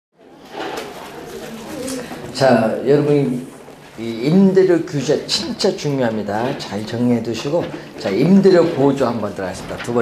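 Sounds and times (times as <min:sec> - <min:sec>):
room noise: 0:00.2 - 0:10.0.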